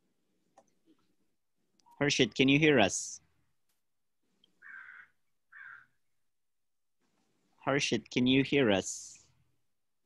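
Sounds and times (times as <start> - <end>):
harsh bird calls: 4.4 - 6.0.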